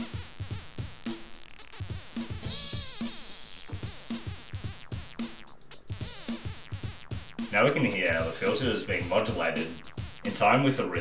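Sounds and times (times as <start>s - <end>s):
electronic drum loop: 0.0s - 11.0s.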